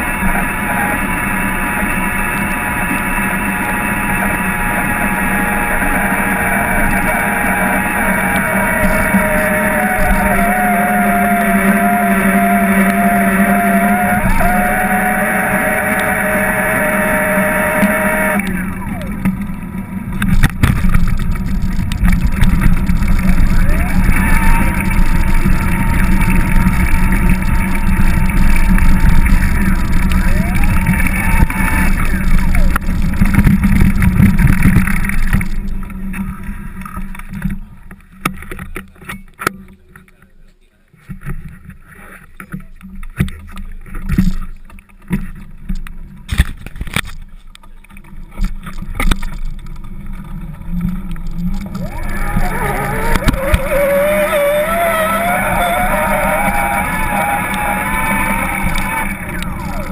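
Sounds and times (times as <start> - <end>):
tyre and road noise: 0.0 - 59.9
bike rattling and knocking: 17.8 - 40.2.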